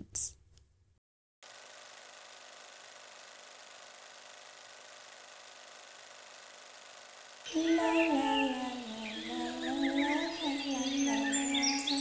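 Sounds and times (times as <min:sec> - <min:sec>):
faint low hum: 0:07.4 - 0:12.0.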